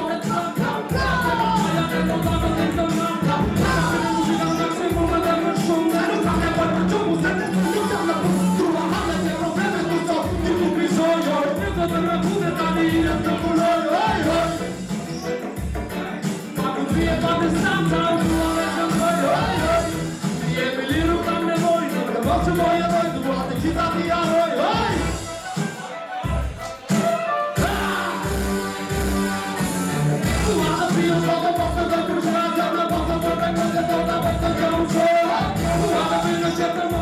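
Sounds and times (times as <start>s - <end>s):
hip hop beat with kick drum: 0.0s - 37.0s
rapping on microphones: 0.0s - 37.0s.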